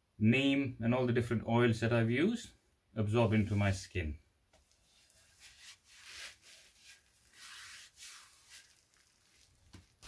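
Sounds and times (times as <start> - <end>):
palms swishing over oiled wood: 4.6 - 10.0.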